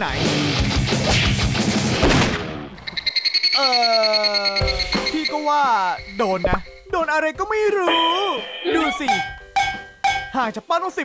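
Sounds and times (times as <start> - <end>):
fast high-pitched pulsing tone: 2.9 - 6.9.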